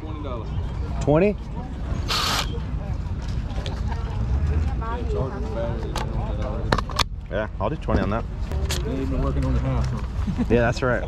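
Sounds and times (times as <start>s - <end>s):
cordless drill motor: 2.1s - 2.5s
drill handling: 2.1s - 2.5s.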